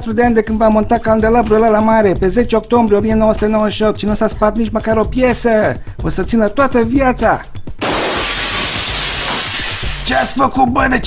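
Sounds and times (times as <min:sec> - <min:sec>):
glass chandelier shattering: 0:07.8 - 0:10.3.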